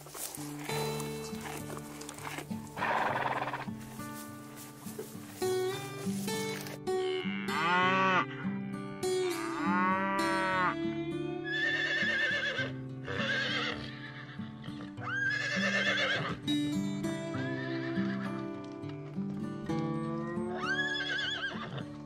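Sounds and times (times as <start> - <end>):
background music: 0.0 - 22.0
horses whinnying: 0.6 - 3.7, 11.5 - 16.4, 17.3 - 18.4, 20.4 - 21.8.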